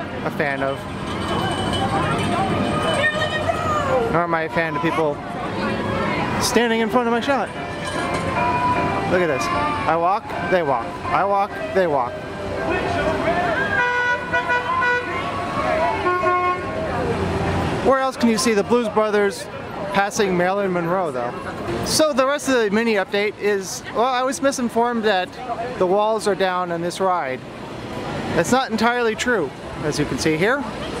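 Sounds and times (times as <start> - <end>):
onlookers' voices: 0.0 - 31.0
car horn honking: 13.5 - 16.8.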